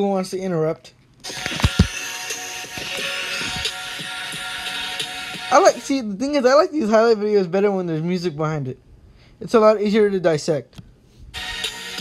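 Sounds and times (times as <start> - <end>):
electronic music: 1.2 - 6.1, 11.4 - 12.0.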